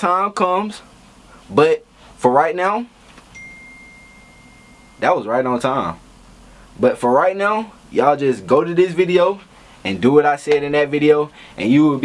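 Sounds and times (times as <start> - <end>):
high-pitched electronic beep: 3.4 - 5.2.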